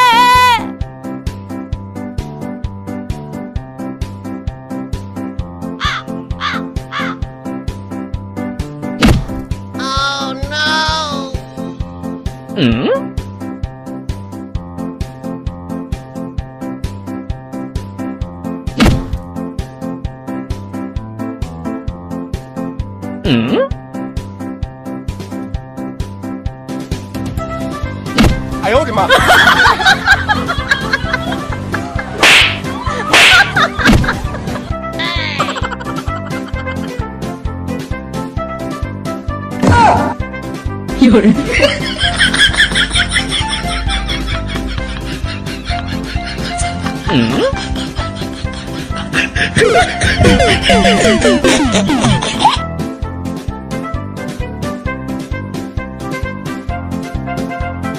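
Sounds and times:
crow cawing: 5.8s - 7.2s
sharp slap hit effects: 9.0s - 9.5s, 18.7s - 19.3s, 28.1s - 28.5s, 32.2s - 34.3s
background music with steady beat: 23.8s - 57.9s.

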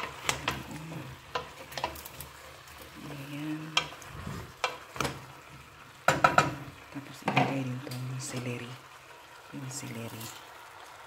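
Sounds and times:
spoon clacking and scraping pot: 0.0s - 8.0s
wooden spoon stirring in a pot: 0.0s - 11.0s.

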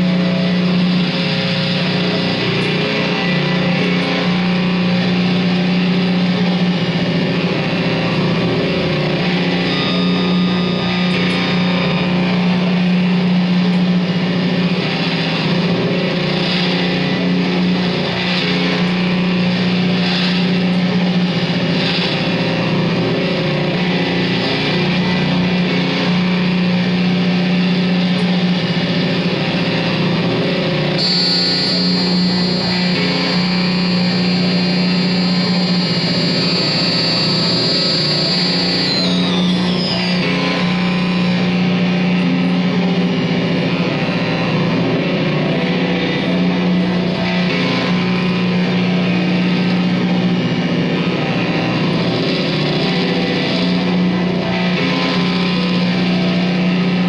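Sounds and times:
electric guitar noise drone: 0.0s - 57.0s
high steady tones: 30.8s - 41.7s.

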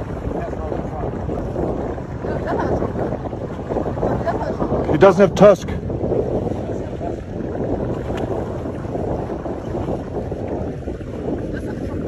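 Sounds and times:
boat motor rumble: 0.0s - 12.0s
wind on microphone: 0.0s - 12.0s.

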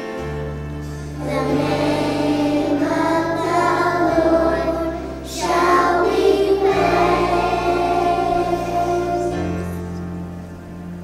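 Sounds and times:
low accompaniment notes: 0.0s - 11.0s
children singing: 1.2s - 9.8s.

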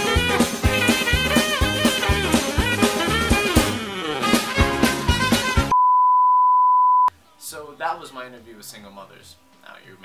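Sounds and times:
background music: 0.0s - 5.7s, 7.1s - 10.0s
steady test-tone beep: 5.7s - 7.1s.

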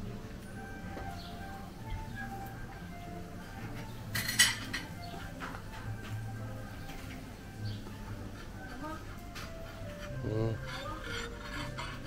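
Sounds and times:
busy buffet background noise: 0.0s - 12.0s
dishes and cutlery clinking: 3.5s - 6.2s, 8.1s - 12.0s.

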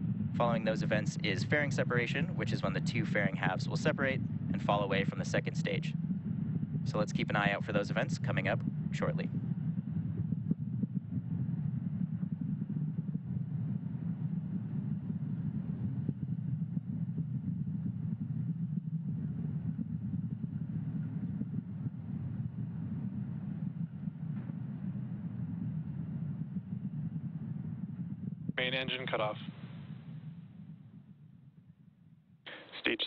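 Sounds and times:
rocket engines rumbling: 0.0s - 31.6s, 32.5s - 33.0s.

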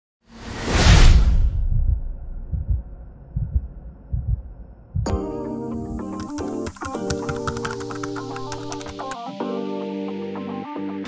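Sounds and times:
loud whoosh: 0.3s - 5.0s
low thuds: 1.2s - 5.1s.

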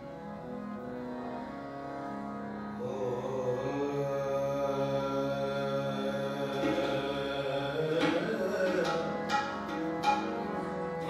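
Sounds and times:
harmoniums holding chords: 0.0s - 11.0s.

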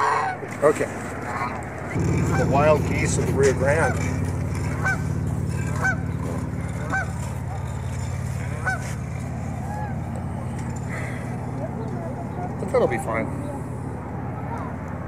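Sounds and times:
geese honking: 0.0s - 0.6s, 1.2s - 14.8s
steady low hum: 0.9s - 15.0s.

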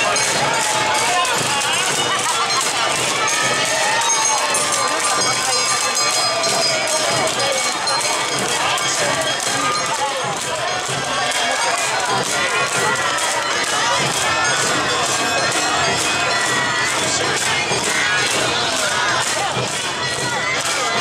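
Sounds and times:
crowd voices: 0.0s - 21.0s
festival dance music: 0.0s - 21.0s.

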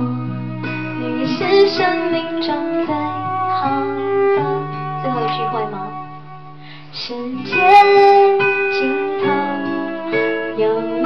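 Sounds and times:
acoustic guitar: 0.0s - 11.0s
woman singing wordless vocal: 1.2s - 6.0s, 6.9s - 11.0s.

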